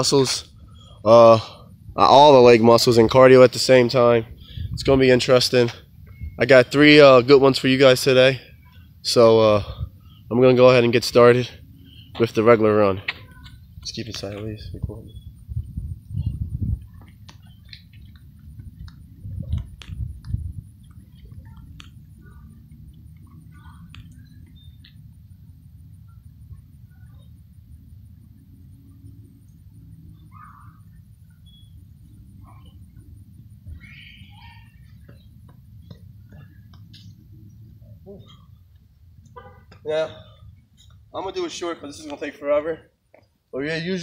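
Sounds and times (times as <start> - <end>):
steady low rumble: 0.0 - 42.0
bird chirps: 6.0 - 6.7, 11.7 - 12.3, 14.8 - 18.4, 20.8 - 27.5, 28.8 - 38.8.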